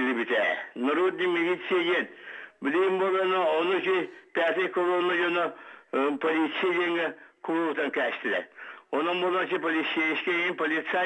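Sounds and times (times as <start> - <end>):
man talking over telephone: 0.0 - 11.0.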